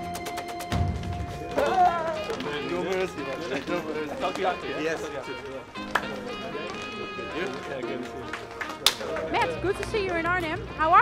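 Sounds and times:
background music: 0:00.0 - 0:11.0
people talking: 0:01.4 - 0:08.4.

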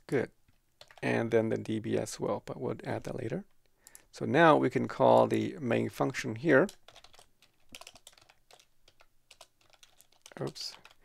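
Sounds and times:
typing on computer keyboard: 0:00.8 - 0:01.8, 0:06.6 - 0:11.0.

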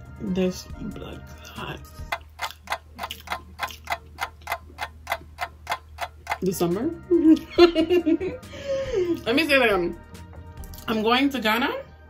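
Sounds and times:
clock ticking: 0:01.4 - 0:07.8.

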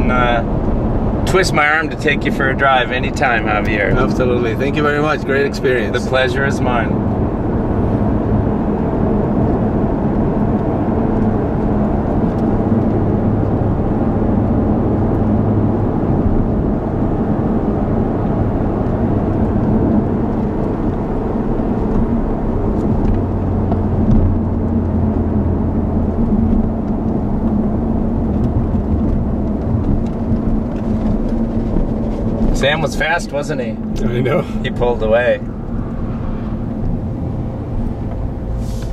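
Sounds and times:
car engine cruising: 0:00.0 - 0:38.9
tyre and road noise: 0:00.0 - 0:38.9.

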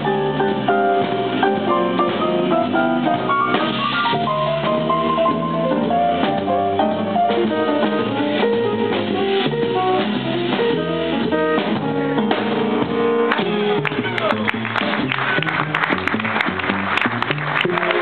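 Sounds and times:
drum kit: 0:00.0 - 0:18.0
jazz quartet playing: 0:00.0 - 0:18.0.

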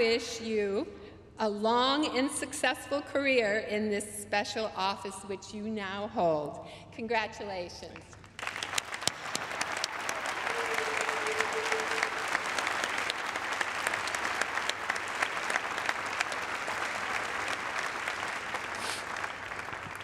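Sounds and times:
audience applause: 0:08.4 - 0:20.0.

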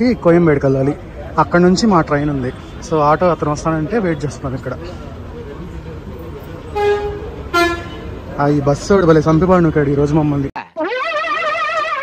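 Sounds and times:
bus stand background noise: 0:00.0 - 0:10.4
bus horn toots: 0:06.7 - 0:08.2.

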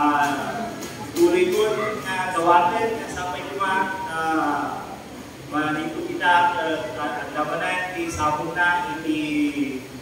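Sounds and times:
man preaching: 0:00.0 - 0:10.0.

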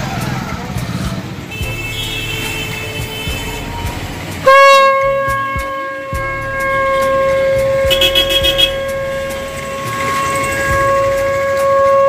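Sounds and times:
conch shell blown: 0:01.5 - 0:12.0.

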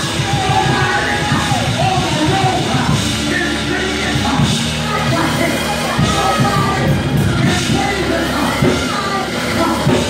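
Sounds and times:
church praise music: 0:00.0 - 0:10.0.

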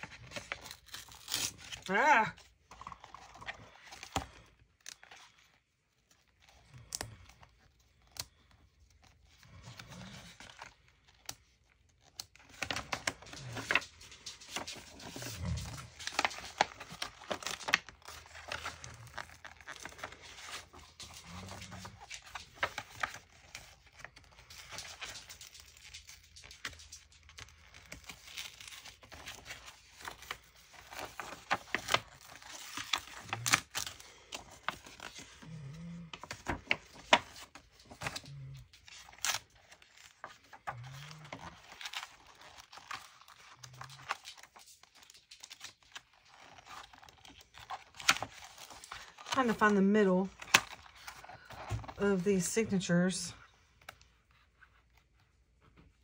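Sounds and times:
paper tearing and rustling: 0:00.0 - 0:52.9
paper crackling: 0:00.0 - 0:56.0.

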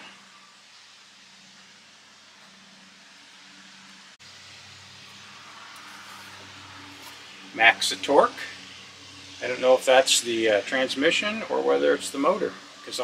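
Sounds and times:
low mechanical hum: 0:00.0 - 0:13.0
soft hiss: 0:00.0 - 0:13.0.

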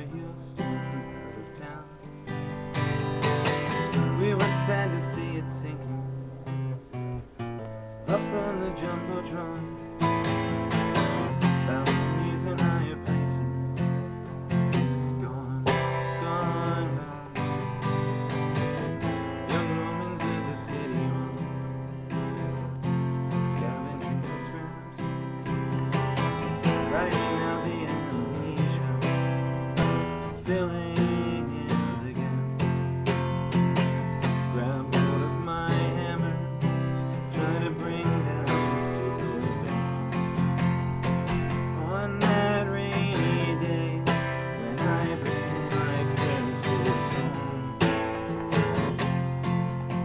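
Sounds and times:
acoustic guitar strumming chords: 0:00.0 - 0:50.0.

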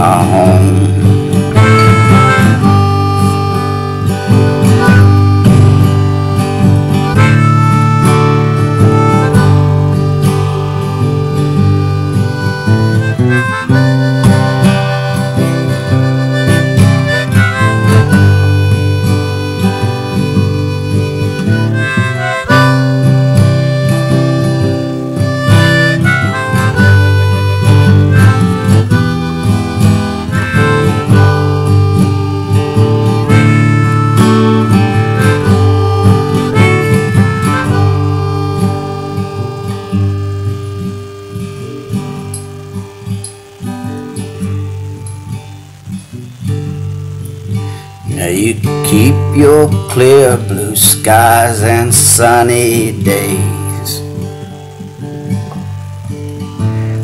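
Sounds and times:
acoustic guitar: 0:00.0 - 0:57.0
harmonica solo: 0:00.0 - 0:57.0.

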